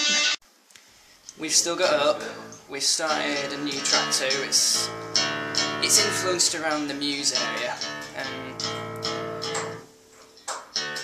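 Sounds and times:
guitar strumming: 1.0 - 11.0.

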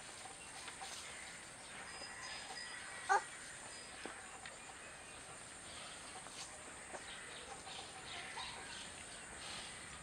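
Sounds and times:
distant bird chirps: 0.0 - 6.1.

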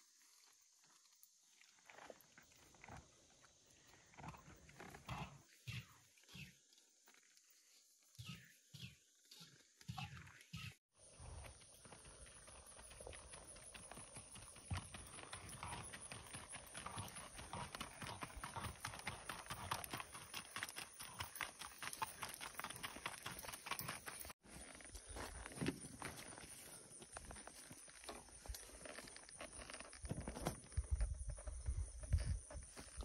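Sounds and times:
mule hoofbeats on gravel: 11.0 - 33.0.

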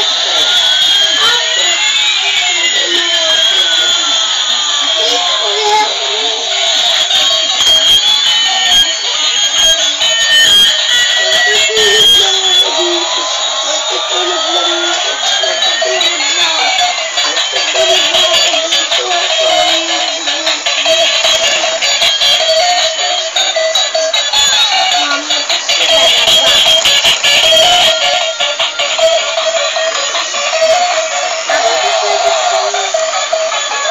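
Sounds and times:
synthesized singing voice: 0.0 - 28.4, 29.0 - 33.9
slow rising toy tone: 0.0 - 33.9
tinny electronic toy tune: 0.0 - 33.9.

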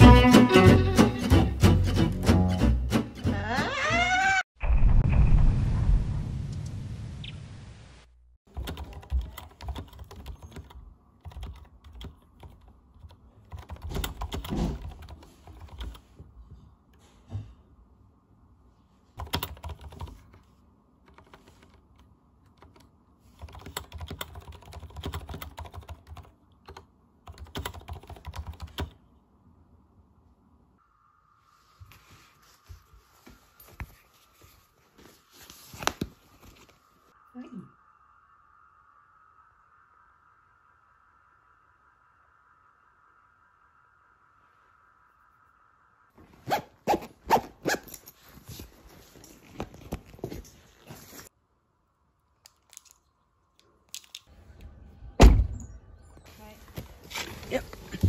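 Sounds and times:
mechanical keyboard typing: 8.5 - 16.0, 19.2 - 20.3, 23.4 - 29.0
faint steady hum: 25.6 - 46.8.

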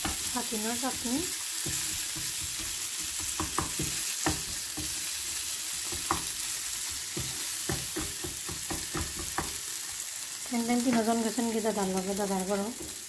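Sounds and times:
spatula scraping and knocking pan: 0.0 - 10.0
chutney sizzling in frying pan: 0.0 - 13.0.

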